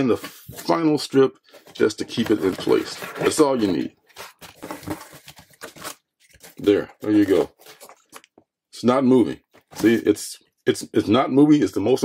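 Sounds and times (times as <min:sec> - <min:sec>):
tape and cardboard rustling: 0:01.5 - 0:08.4.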